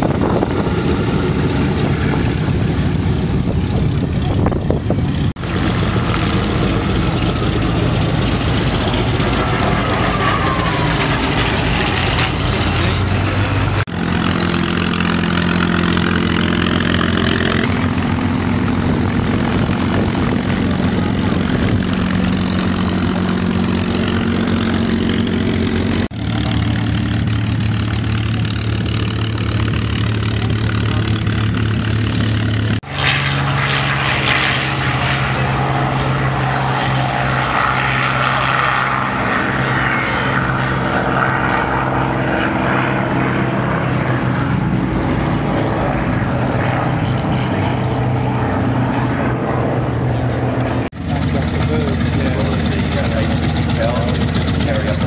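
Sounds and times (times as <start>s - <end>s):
aircraft engines droning past: 0.0s - 55.0s
propeller aircraft engine running: 0.0s - 55.0s.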